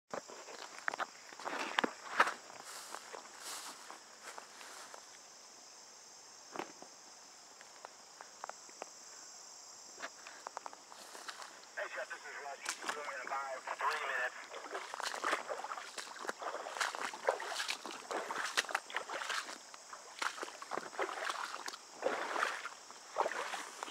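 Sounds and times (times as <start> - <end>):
high-pitched insect chorus: 0.1 - 23.9
footsteps rustling through grass: 0.4 - 5.2, 10.8 - 11.6, 13.8 - 23.9.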